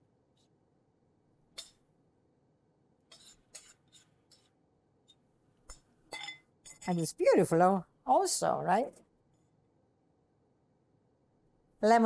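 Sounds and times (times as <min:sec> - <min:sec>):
spoon scraping ceramic bowl: 0:03.1 - 0:04.6.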